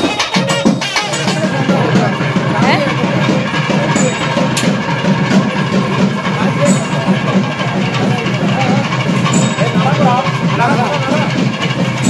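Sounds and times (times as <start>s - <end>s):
crowd voices: 0.0s - 12.0s
temple festival music with drumming: 0.0s - 12.0s.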